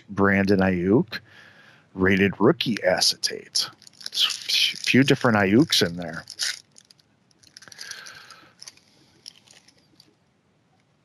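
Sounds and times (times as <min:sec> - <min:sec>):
foil wrapper crinkling: 0:03.7 - 0:10.1.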